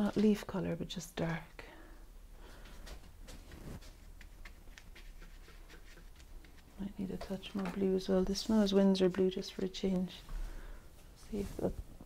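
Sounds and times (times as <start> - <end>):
paintbrush scratching on paper: 3.6 - 7.0.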